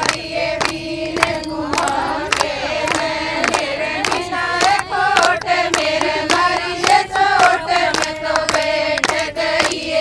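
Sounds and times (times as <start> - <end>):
hand-clapping: 0.0 - 10.0
women singing in unison: 0.0 - 10.0.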